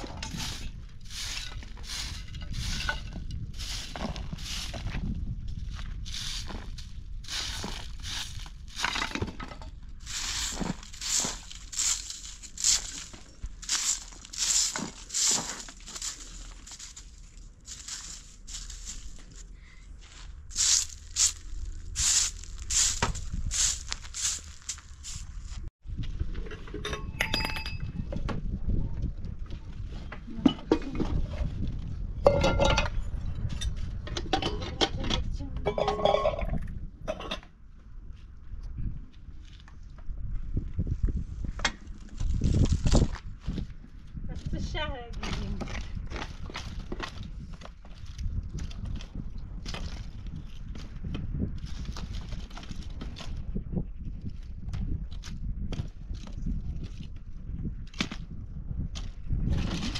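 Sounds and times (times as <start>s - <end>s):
broom scraping dry earth: 0.0s - 25.7s, 41.2s - 43.7s, 44.4s - 53.4s
pots and dishes clinking: 35.7s - 37.4s.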